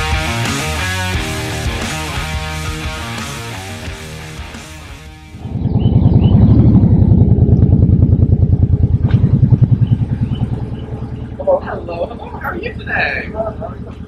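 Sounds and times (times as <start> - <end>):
motorcycle engine pulsing: 5.2 - 14.0.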